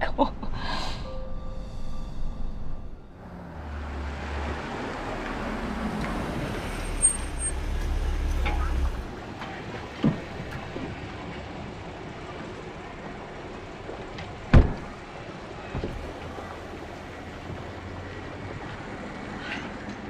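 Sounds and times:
car engine idling: 3.0s - 18.9s.

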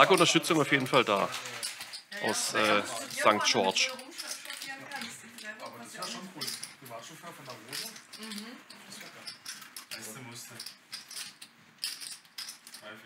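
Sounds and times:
poker chips clicking: 7.7s - 12.8s.

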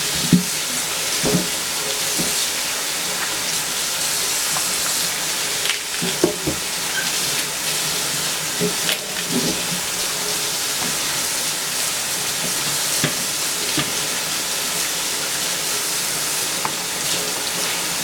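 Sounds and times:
food sizzling in a pan: 0.0s - 18.0s.

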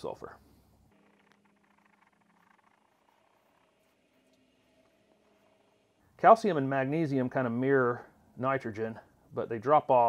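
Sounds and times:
faint steady hum: 0.0s - 10.0s.

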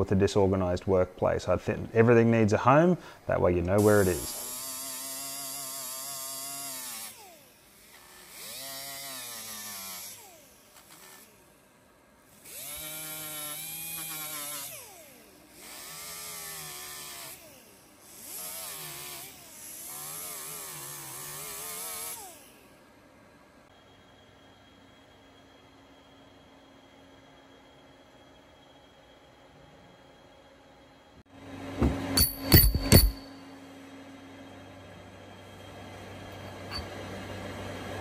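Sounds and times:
angle grinder grinding metal: 3.8s - 11.5s, 12.3s - 22.7s, 36.7s - 36.9s.

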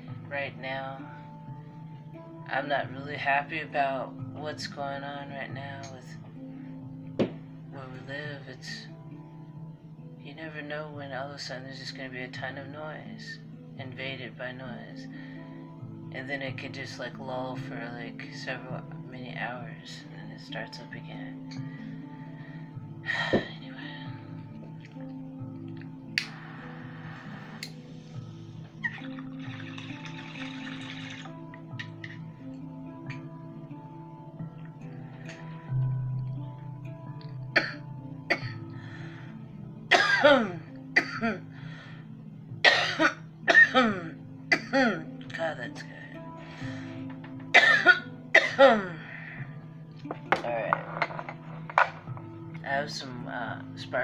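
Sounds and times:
music: 0.0s - 54.0s
bong water bubbling: 28.7s - 32.2s
person coughing: 39.9s - 41.4s, 42.7s - 45.0s, 47.5s - 49.0s.

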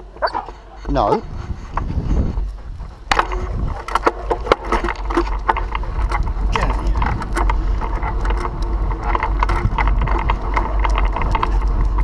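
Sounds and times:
wind rumbling on microphone: 0.0s - 12.0s
light rattles and clicks: 0.3s - 12.0s.

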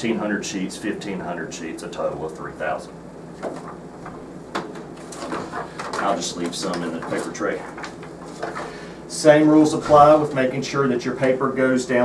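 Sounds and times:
paper sheets being handled: 3.3s - 8.9s.

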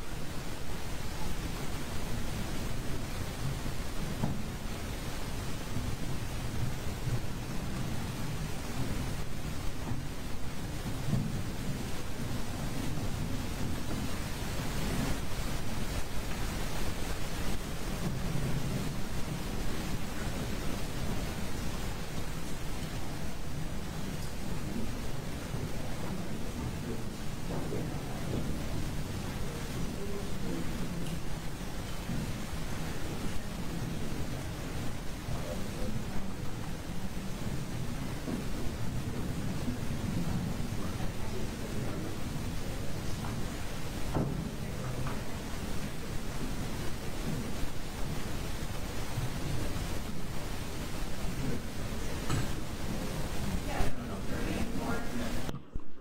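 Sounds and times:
low room rumble: 0.0s - 56.0s
faint indistinct murmuring: 0.3s - 56.0s.

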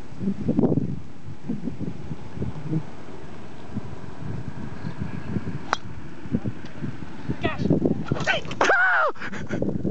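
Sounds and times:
wind noise on microphone: 0.0s - 9.9s
golf club striking ball: 5.6s - 6.0s.

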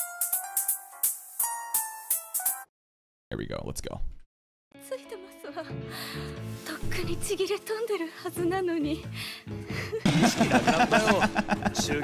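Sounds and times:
background music: 4.8s - 12.0s
man laughing: 10.0s - 12.0s.

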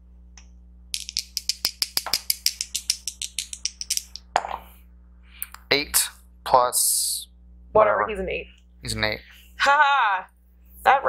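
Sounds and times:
dice rattling: 1.0s - 4.6s.

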